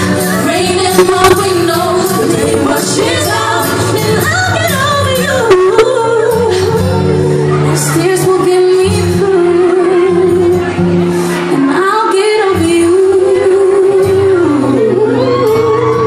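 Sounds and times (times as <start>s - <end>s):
women singing pop melody: 0.0s - 10.8s, 11.5s - 16.0s
backing track: 0.0s - 16.0s.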